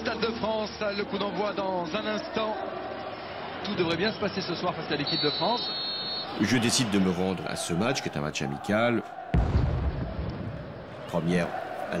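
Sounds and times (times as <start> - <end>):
deep explosion boom: 9.3 - 10.8.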